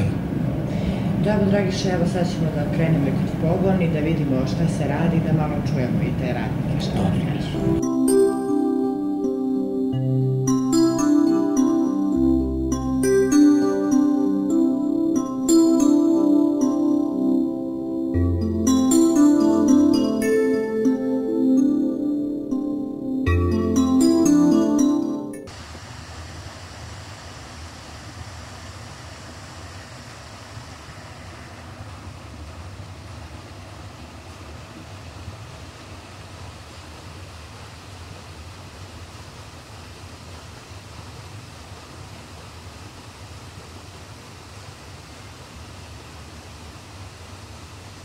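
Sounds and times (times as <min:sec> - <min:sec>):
low machinery hum: 0:00.0 - 0:07.8.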